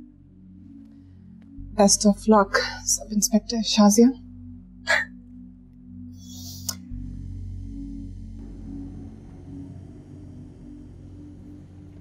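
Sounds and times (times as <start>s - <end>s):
low drone music: 0.0s - 12.0s.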